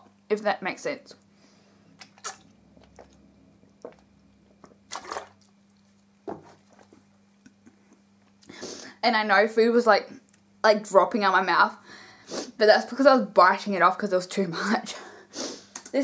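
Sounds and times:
low steady hum: 0.0s - 16.0s
person sipping and swallowing: 2.0s - 4.9s.

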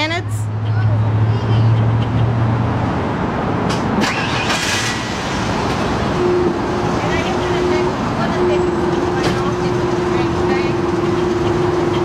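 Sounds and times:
low vehicle hum: 0.0s - 12.0s
road traffic noise: 0.0s - 12.0s
vehicle passing rush: 0.0s - 12.0s.

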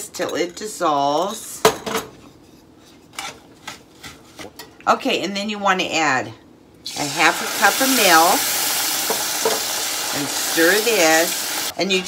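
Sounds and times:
wooden spoon scraping skillet: 2.4s - 4.6s.

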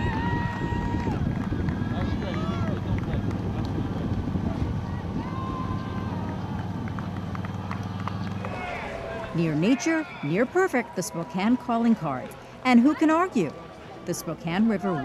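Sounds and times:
spectators shouting and cheering: 0.0s - 2.8s, 4.5s - 15.0s
vehicle engine humming: 0.0s - 15.0s.

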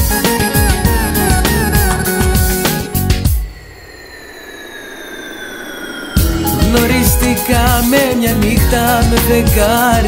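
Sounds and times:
synthesizer sweep whoosh: 0.4s - 8.4s.

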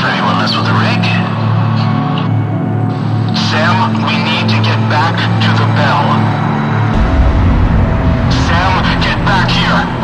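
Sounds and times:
heavy electronic bass music: 6.9s - 10.0s
distorted wobbling synth: 7.0s - 10.0s.

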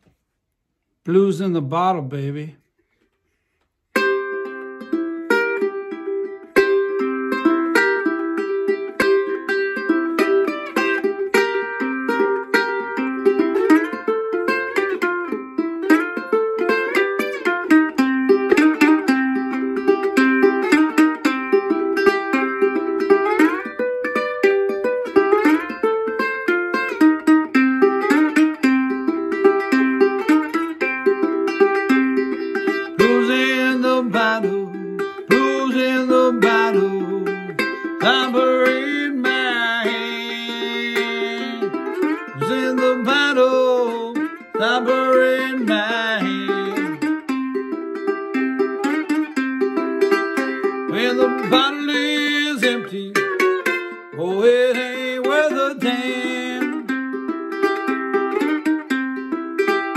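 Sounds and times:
slide ukulele blues riff: 1.0s - 59.9s.

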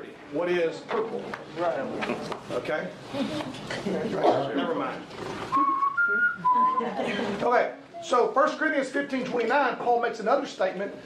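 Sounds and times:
person whistling short notes: 5.5s - 6.9s.

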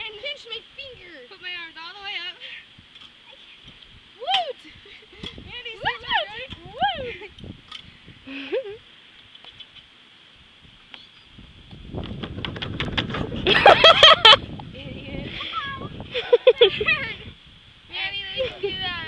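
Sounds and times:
girls squealing and laughing: 4.2s - 7.4s, 13.4s - 14.5s, 15.3s - 17.3s.

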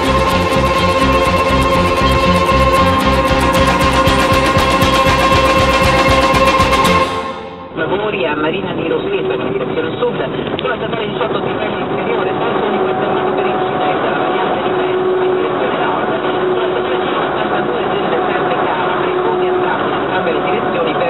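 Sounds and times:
truck engine drone in cab: 0.0s - 21.0s.

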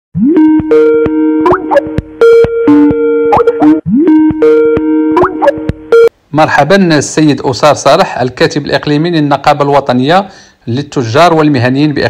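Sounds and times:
electronic ringtone jingle: 0.2s - 6.1s.

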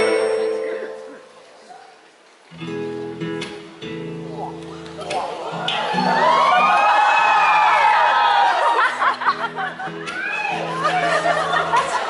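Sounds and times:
audience cheering and screaming: 5.4s - 12.0s.

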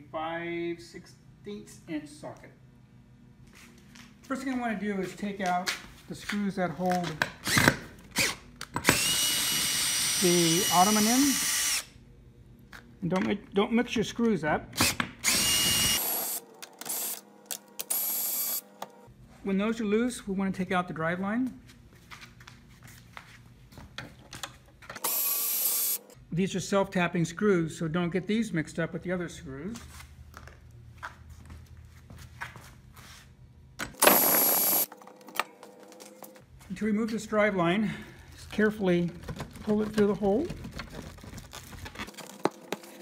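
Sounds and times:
drill driver whining: 7.4s - 11.9s, 14.8s - 18.9s, 25.0s - 26.1s, 34.0s - 35.0s.

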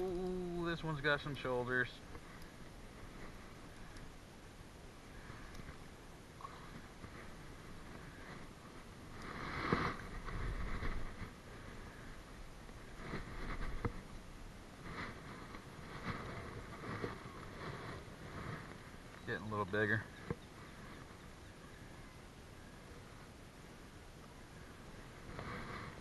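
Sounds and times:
rod and line handling noise: 0.0s - 26.0s.

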